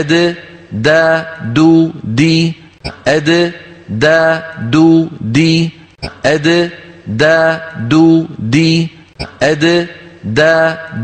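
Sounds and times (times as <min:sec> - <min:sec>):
man reciting syllables: 0:00.0 - 0:11.0.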